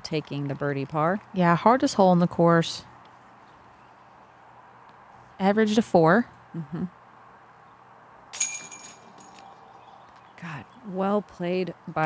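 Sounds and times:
disc striking metal basket chains: 0:08.3 - 0:09.7.

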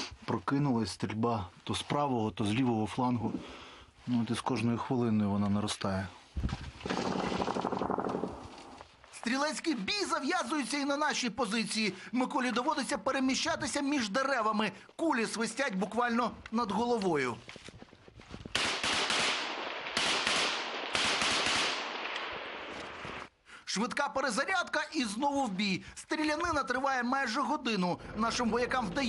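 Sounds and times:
automatic gunfire burst: 0:06.8 - 0:08.4, 0:18.6 - 0:22.1.

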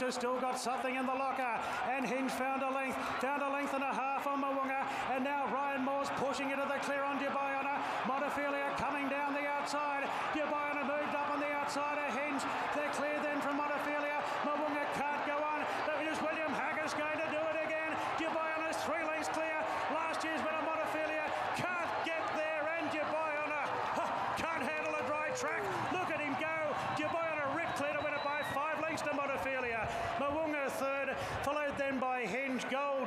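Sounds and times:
crowd yelling and cheering: 0:00.0 - 0:33.0.

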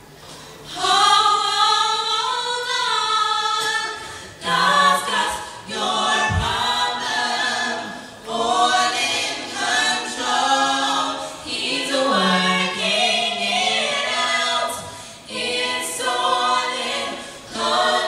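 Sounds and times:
women singing a cappella: 0:00.6 - 0:18.0.

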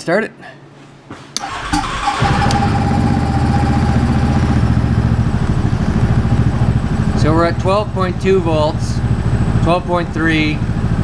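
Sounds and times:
engine starting and idling: 0:01.4 - 0:06.8.

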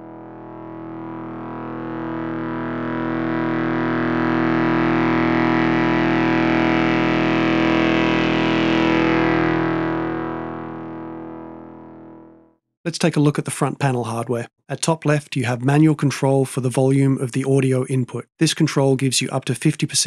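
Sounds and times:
distorted synthesizer drone: 0:00.0 - 0:12.5.

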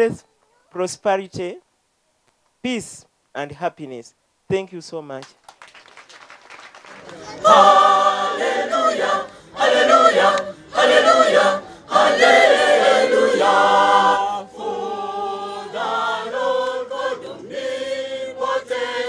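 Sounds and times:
women's choir singing unaccompanied: 0:07.1 - 0:19.0.

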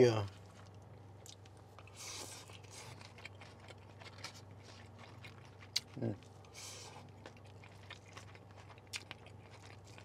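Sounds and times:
person chewing food: 0:00.3 - 0:10.0.

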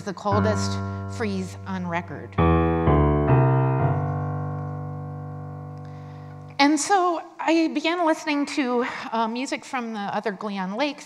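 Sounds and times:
low electronic piano note: 0:00.3 - 0:06.6.

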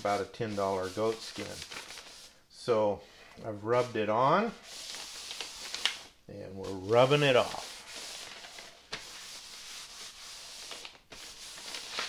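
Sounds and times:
paper towel rubbing hiss: 0:00.0 - 0:02.5, 0:03.5 - 0:12.0.

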